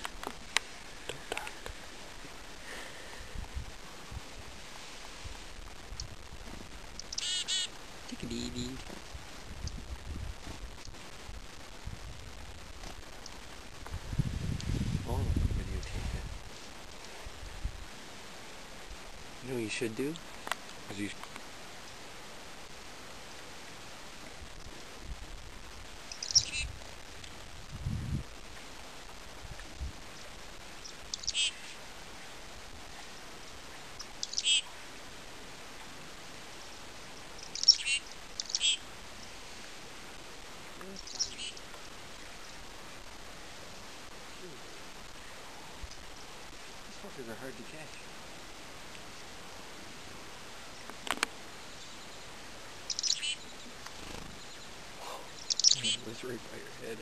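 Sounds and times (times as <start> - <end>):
faint outdoor hiss: 0.0 - 57.0
chickadee call: 7.0 - 7.7, 31.1 - 31.8, 34.2 - 34.7, 55.3 - 56.1
chickadee high call notes: 7.2 - 7.7, 55.4 - 56.1.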